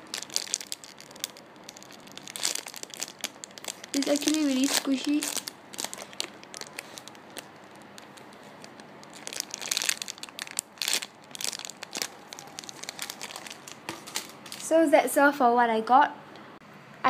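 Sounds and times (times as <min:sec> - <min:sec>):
plastic bag crinkling: 0:00.0 - 0:14.7.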